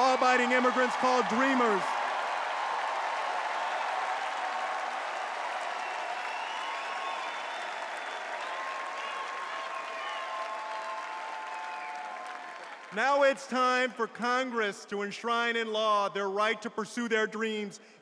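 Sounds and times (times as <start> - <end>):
crowd applauding: 0.0 - 13.2.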